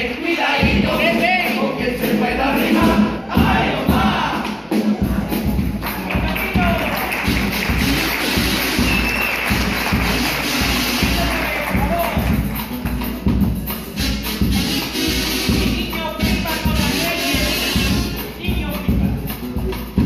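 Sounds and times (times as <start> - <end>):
group singing with guitars: 0.0 - 6.1
bass drum beats: 0.0 - 20.0
crowd applause and cheering: 3.4 - 15.5.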